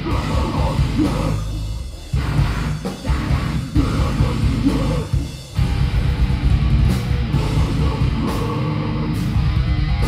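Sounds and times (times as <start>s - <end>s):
bass guitar: 0.0s - 10.0s
drum kit: 0.0s - 10.0s
electric guitars: 0.0s - 10.0s.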